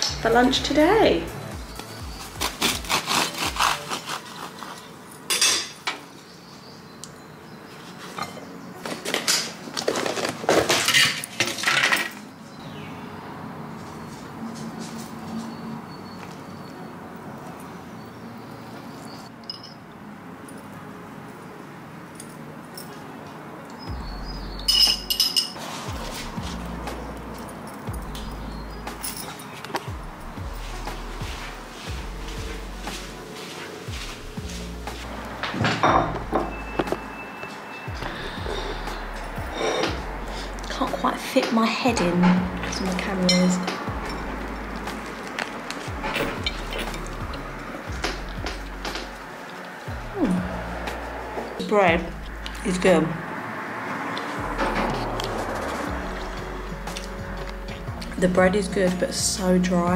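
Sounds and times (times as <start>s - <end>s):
bread crust crunching: 2.1s - 5.0s
bread knife sawing bread: 2.3s - 5.0s
fork clinking against glass jar: 19.4s - 19.8s, 24.7s - 25.6s.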